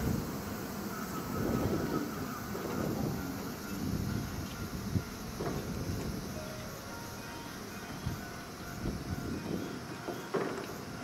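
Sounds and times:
electric train running slowly: 0:00.0 - 0:11.0.

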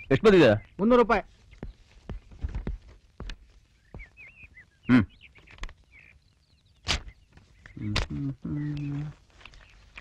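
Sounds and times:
faint high bird chirps: 0:00.0 - 0:02.5, 0:03.3 - 0:10.0.

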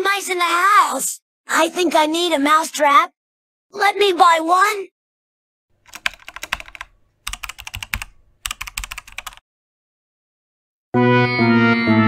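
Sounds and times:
keyboard typing: 0:05.8 - 0:09.4.

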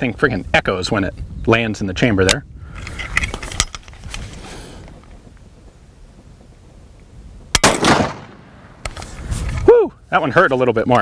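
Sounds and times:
rifle shot with echo: 0:07.5 - 0:09.0.

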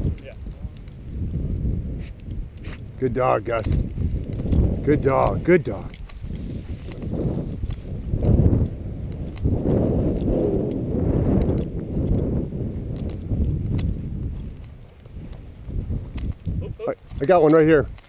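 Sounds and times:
wind buffeting microphone: 0:00.0 - 0:18.0
footsteps through dry grass: 0:00.4 - 0:18.0.

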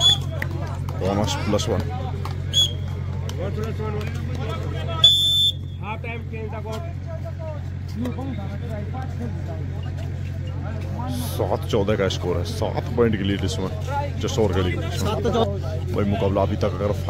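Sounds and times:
referee's whistle: 0:00.0 - 0:00.4, 0:02.5 - 0:03.0, 0:05.0 - 0:05.9
spectator chatter: 0:00.0 - 0:17.0
steady low hum: 0:00.0 - 0:17.0.

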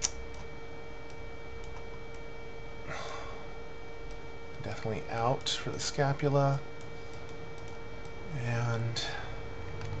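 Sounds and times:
electrical hum: 0:00.0 - 0:10.0
computer mouse clicks: 0:06.8 - 0:08.2.

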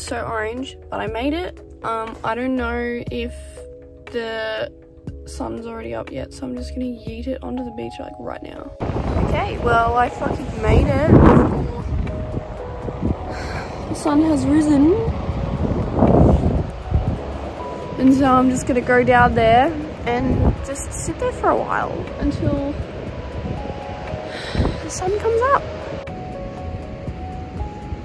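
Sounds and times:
faint background music: 0:00.0 - 0:28.0
wind buffeting microphone: 0:00.0 - 0:28.0.

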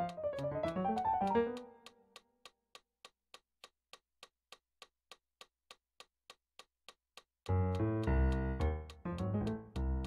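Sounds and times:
metronome clicking: 0:00.0 - 0:02.3.

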